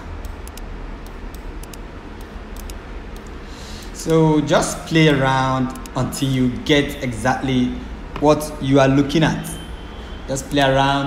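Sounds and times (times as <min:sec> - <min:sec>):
background hiss and low hum: 0:00.0 - 0:11.0.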